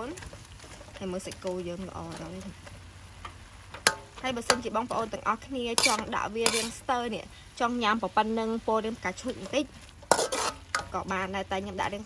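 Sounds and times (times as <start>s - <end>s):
meat sizzling: 0.0s - 12.0s
metal spoon scraping a wok: 3.8s - 7.0s, 9.4s - 11.0s.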